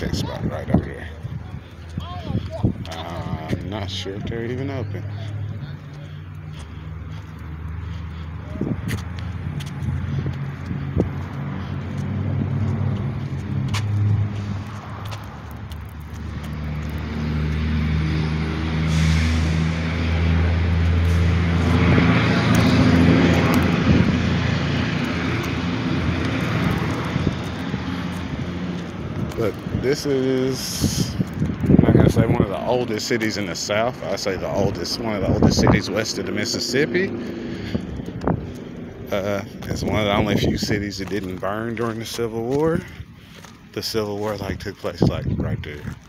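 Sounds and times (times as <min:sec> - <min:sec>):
vehicle engine humming: 0:00.0 - 0:46.0.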